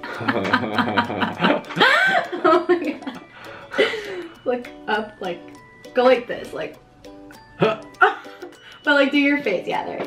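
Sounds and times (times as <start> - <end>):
man and woman laughing: 0.0 - 4.3, 7.6 - 8.5.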